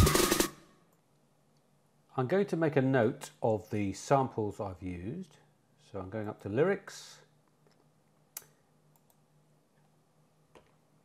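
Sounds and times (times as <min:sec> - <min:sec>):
drum hit ringing out: 0:00.0 - 0:00.6
song with drum beat: 0:00.0 - 0:00.7.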